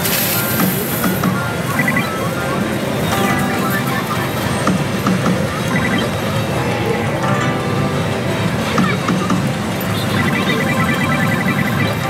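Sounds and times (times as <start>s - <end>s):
dense hall noise: 0.0s - 12.0s
electronic music: 1.9s - 12.0s.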